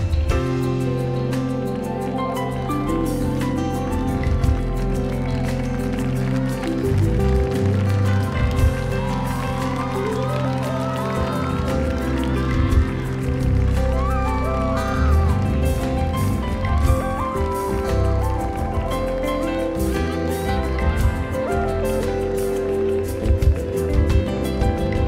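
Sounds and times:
live band playing pop ballad: 0.0 - 25.0.

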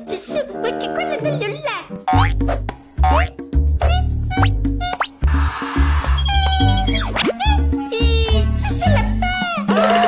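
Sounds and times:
playful cartoon music: 0.0 - 10.0.

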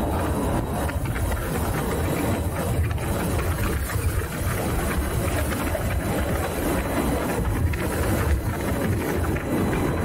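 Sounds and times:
road and tyre noise: 0.0 - 10.0
wind buffeting microphone: 0.0 - 10.0.

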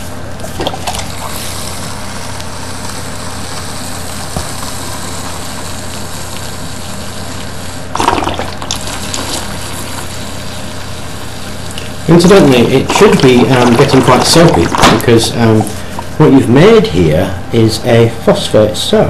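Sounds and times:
water pouring into plastic jug: 7.9 - 10.1, 11.8 - 16.1
water splash: 8.0 - 9.5, 12.8 - 15.1.

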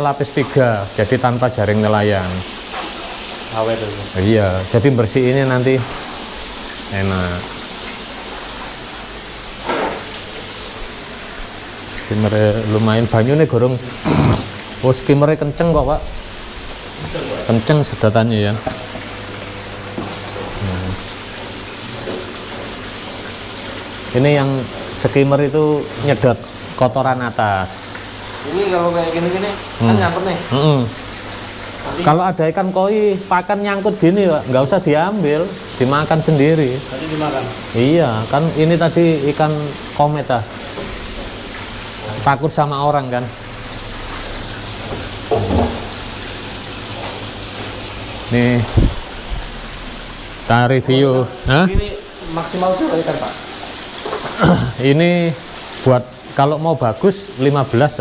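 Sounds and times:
pond pump running: 0.0 - 58.0
water splashing into pond: 43.4 - 50.5.

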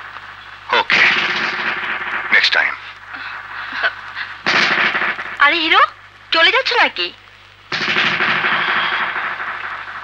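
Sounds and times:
loud noisy crash: 0.8 - 2.7, 4.4 - 5.3, 7.7 - 10.0.

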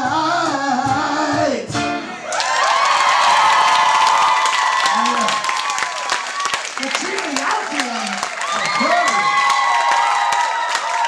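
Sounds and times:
audience clapping and cheering: 2.2 - 11.0
held whoops: 2.3 - 6.6, 8.4 - 11.0.

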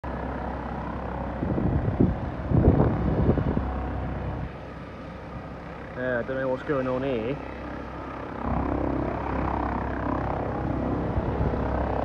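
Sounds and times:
helicopter engine and rotor hum: 0.0 - 12.0
gusty wind buffeting: 0.1 - 12.0.

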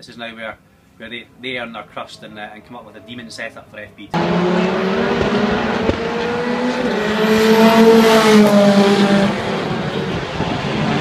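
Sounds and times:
racing car engine passing: 2.0 - 11.0.

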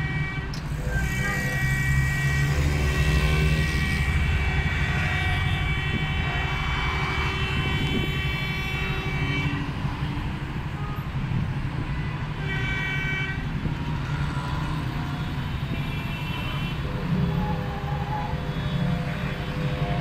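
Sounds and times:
vehicle horn: 0.0 - 9.8, 11.8 - 13.5, 15.2 - 20.0
traffic engines idling and pulling away: 0.0 - 20.0.

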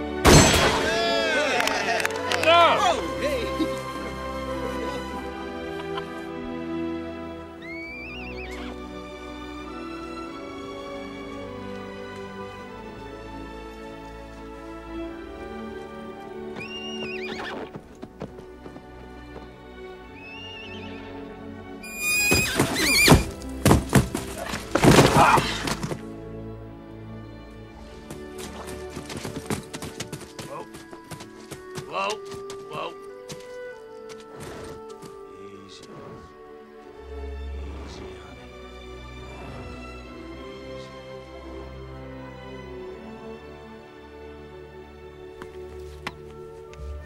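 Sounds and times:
film score held chords: 0.0 - 17.2, 17.8 - 21.9, 23.3 - 47.0
horse whinnying: 7.6 - 8.8, 16.6 - 17.8, 20.1 - 21.2, 21.8 - 23.4
horse hooves clattering: 15.2 - 19.8, 21.8 - 26.2, 27.8 - 35.4
man calling to horse: 31.8 - 33.0.

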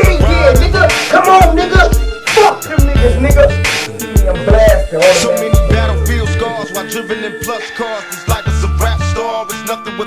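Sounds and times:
rapping over a beat: 0.0 - 10.0
deep bass note: 3.0 - 6.8.

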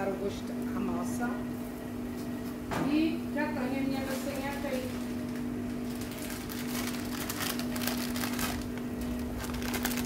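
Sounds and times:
steady low hum: 0.0 - 10.0
plastic bag crinkling: 3.9 - 10.0.

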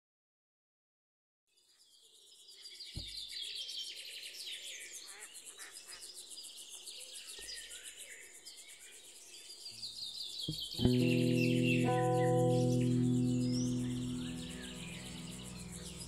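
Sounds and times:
birds chirping: 10.6 - 16.0
high pulsing buzz: 10.8 - 16.0.

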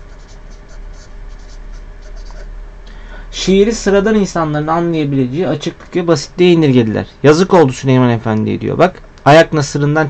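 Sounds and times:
marker scratching on paper: 0.0 - 2.5.

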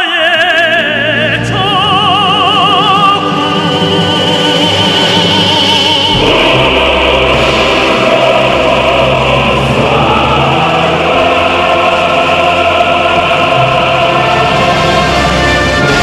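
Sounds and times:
choir with orchestra: 0.0 - 16.0.

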